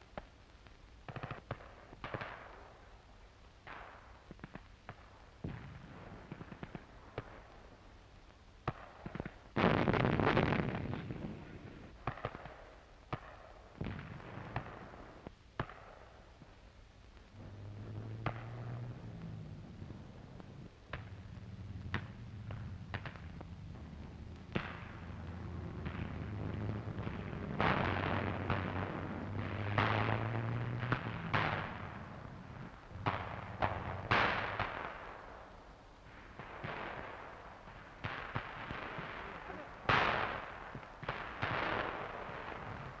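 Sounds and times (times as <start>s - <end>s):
gunfire: 8.6s - 16.2s, 17.4s - 35.5s, 36.2s - 43.0s
explosions: 8.7s - 12.6s, 17.2s - 35.5s
low rumble: 17.2s - 34.7s.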